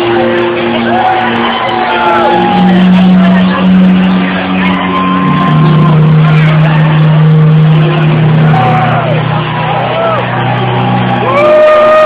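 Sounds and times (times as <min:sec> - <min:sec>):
audience whooping: 0:00.1 - 0:12.0.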